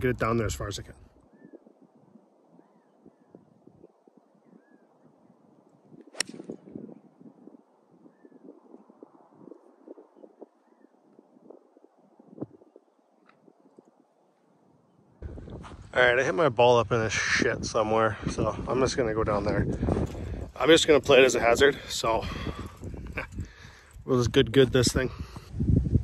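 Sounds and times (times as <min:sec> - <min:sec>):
golf club striking ball: 0:06.1 - 0:06.7.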